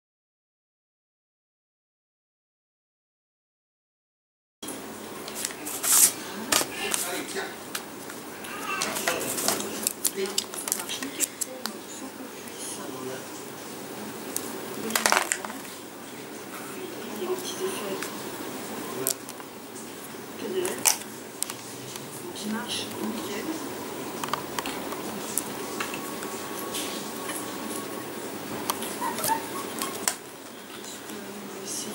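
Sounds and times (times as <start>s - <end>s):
steady low hiss: 4.6s - 31.9s.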